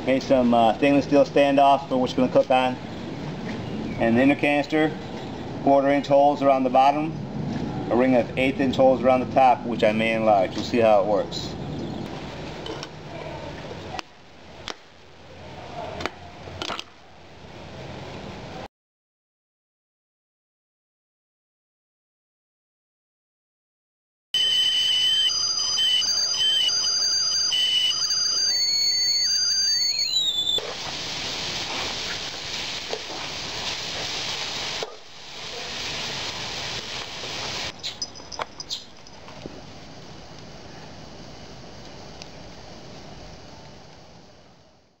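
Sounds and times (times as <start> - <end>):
high wavering whistle tones: 24.4 - 30.7
meat sizzling in a wok: 30.8 - 38.0.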